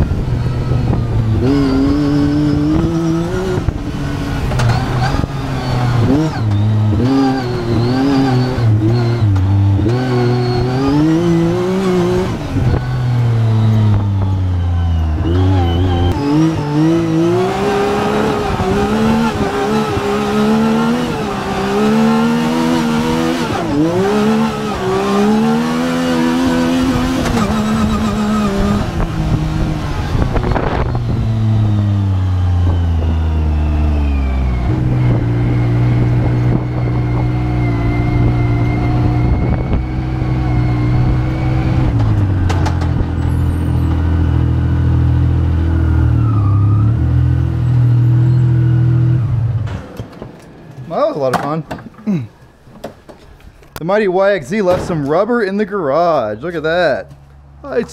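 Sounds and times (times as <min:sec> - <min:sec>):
engine revving: 0:00.0 - 0:52.2.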